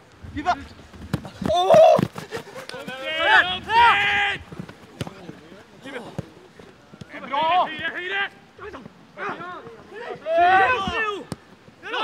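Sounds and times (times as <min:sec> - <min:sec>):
players shouting: 0:00.3 - 0:12.0
boots kicking ball: 0:00.9 - 0:03.2.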